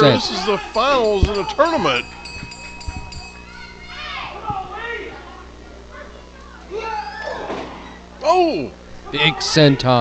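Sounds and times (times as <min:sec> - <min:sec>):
children yelling: 0:03.4 - 0:05.3, 0:05.9 - 0:08.0.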